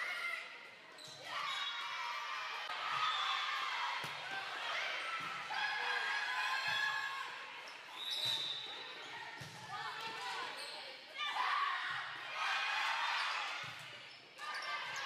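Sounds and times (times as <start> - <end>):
players and spectators calling out: 0.0 - 15.0.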